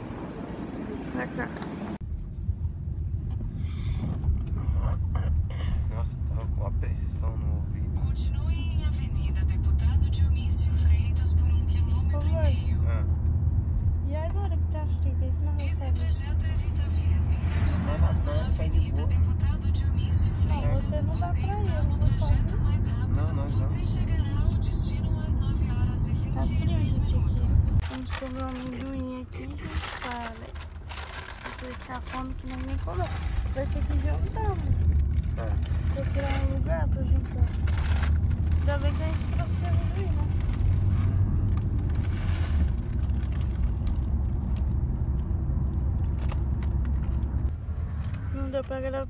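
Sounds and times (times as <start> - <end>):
car engine and road rumble: 0.0 - 49.0.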